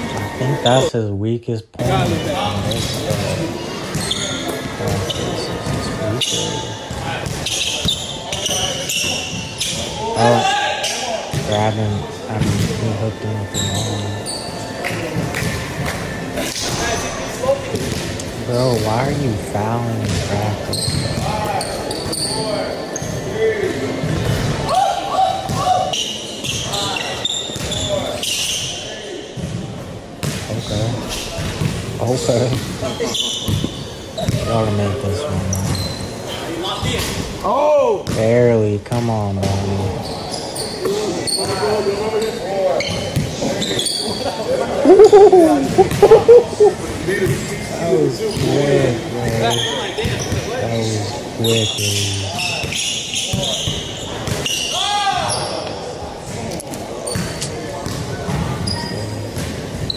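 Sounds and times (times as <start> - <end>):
people talking: 0.0 - 9.0, 10.0 - 15.5, 16.4 - 24.0, 34.2 - 35.8, 36.4 - 40.0, 40.8 - 52.6
sneaker squeaks: 2.0 - 15.7, 20.0 - 23.4, 24.0 - 29.6, 30.2 - 37.2, 39.4 - 47.5, 49.2 - 59.9.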